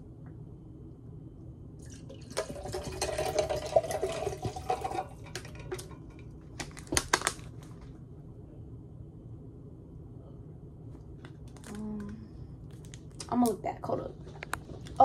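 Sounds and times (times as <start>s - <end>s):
water pouring into a tumbler: 1.8s - 6.2s.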